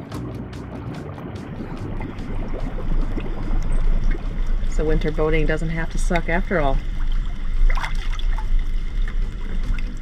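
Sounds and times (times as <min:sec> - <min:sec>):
hot tub water churning: 0:00.0 - 0:10.0
low rumble: 0:00.0 - 0:10.0.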